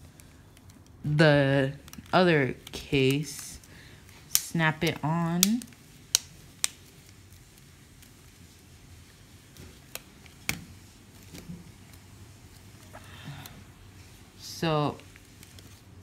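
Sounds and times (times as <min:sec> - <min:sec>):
soft handling sounds: 0:00.0 - 0:16.0.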